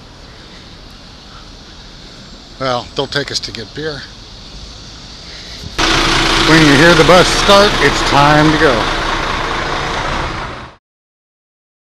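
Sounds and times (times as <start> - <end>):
low street rumble: 0.0 - 10.8
loud rush of noise: 5.2 - 10.8.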